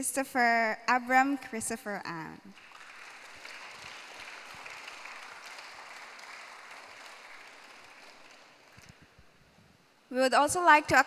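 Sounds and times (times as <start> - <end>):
audience applauding: 2.5 - 9.2.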